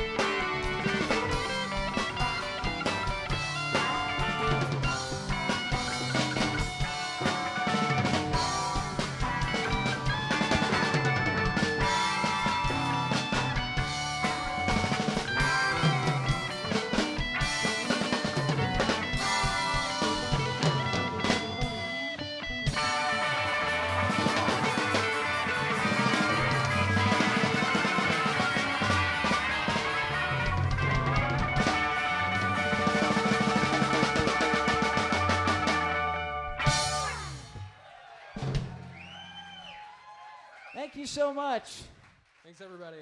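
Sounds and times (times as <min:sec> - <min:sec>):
live rock band playing: 0:00.0 - 0:37.7, 0:38.4 - 0:39.5.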